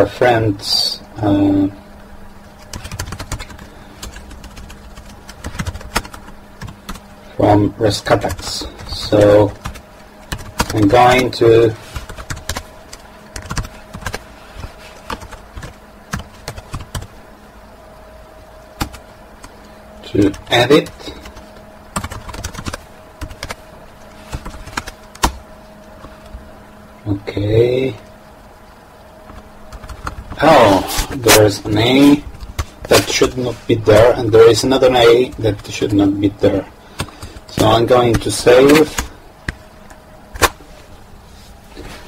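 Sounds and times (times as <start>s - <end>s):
low electrical hum: 0.0s - 42.0s
computer keyboard clicking: 2.6s - 7.0s, 8.3s - 10.9s, 12.0s - 14.2s, 15.0s - 17.1s, 18.8s - 19.0s, 22.0s - 23.6s, 24.3s - 25.4s, 29.3s - 30.4s.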